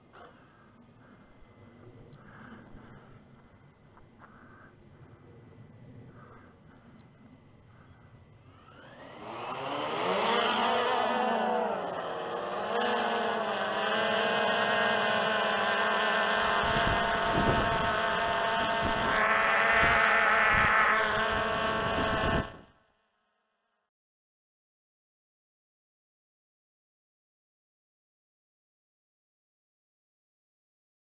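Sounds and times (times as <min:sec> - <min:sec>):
drone motors buzzing whine: 0:00.0 - 0:22.8.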